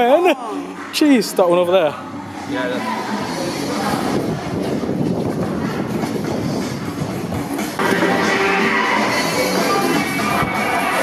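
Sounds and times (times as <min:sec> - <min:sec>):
music: 0:03.1 - 0:11.0
handheld camera rumbling and clattering: 0:04.0 - 0:07.8.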